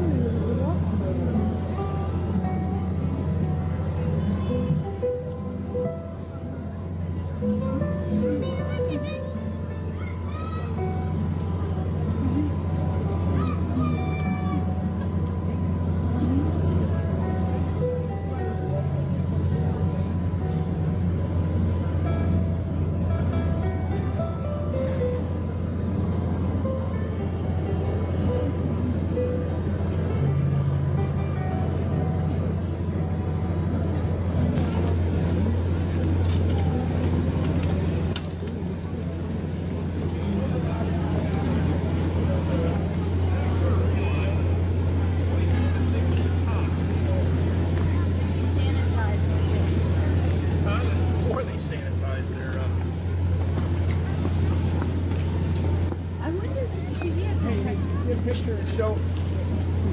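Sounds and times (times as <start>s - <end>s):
crowd talking: 0.0s - 59.9s
steady low rumble: 0.0s - 59.9s
melody of short notes: 1.2s - 10.0s.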